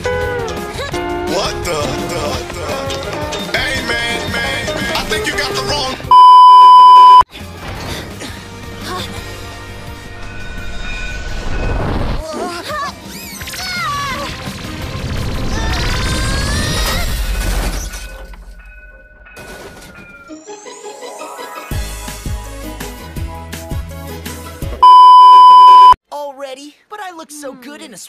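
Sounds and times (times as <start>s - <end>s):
cartoon soundtrack music: 0.0s - 6.0s, 20.3s - 24.4s
high test tone beep: 6.1s - 7.2s, 24.8s - 26.0s.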